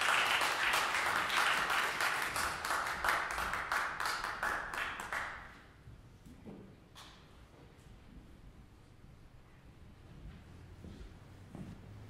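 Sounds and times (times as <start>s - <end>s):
audience applause: 0.0s - 5.4s.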